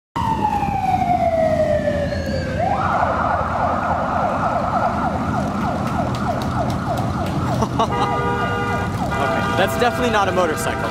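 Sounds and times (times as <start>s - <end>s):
electronic police siren: 0.2s - 10.1s
motorcycle engines passing: 1.6s - 10.9s.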